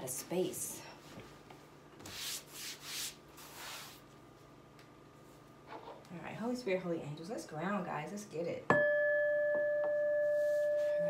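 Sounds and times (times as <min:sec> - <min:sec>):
hand rubbing cloth pad: 0:02.0 - 0:04.0.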